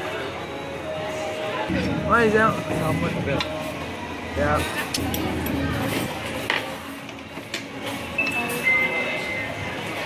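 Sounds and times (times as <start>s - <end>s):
restaurant background noise: 0.0s - 10.0s.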